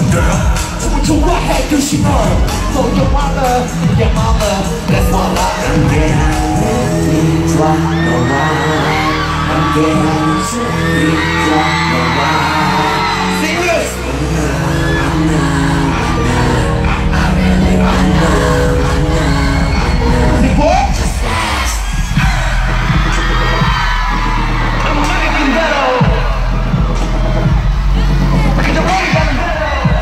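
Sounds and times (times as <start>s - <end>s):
crowd cheering and whooping: 0.0s - 30.0s
pop music with sung vocals: 0.0s - 30.0s.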